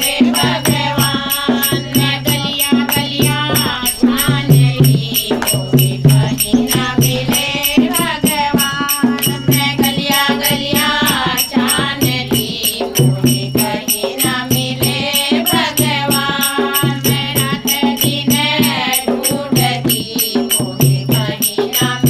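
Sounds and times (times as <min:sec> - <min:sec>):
quick percussion beat: 0:00.0 - 0:22.0.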